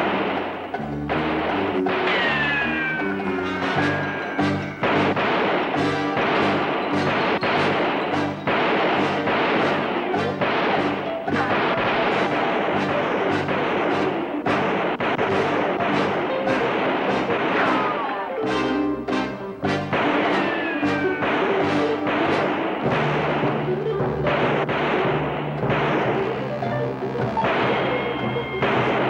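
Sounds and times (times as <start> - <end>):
rapid gunshots: 0.0 - 18.1, 19.2 - 29.0
dramatic film score: 0.0 - 29.0.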